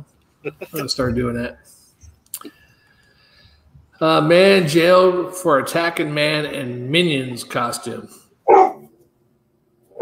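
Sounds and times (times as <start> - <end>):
dog bark: 8.5 - 8.9.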